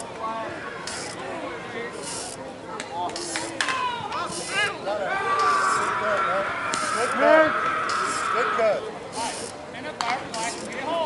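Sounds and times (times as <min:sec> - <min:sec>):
distant voices calling out: 0:03.8 - 0:09.7.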